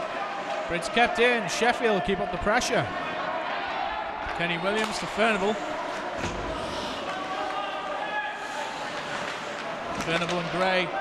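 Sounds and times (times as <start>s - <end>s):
echoing din of voices: 0.0s - 11.0s
players hitting rink boards: 4.2s - 8.0s, 8.6s - 11.0s.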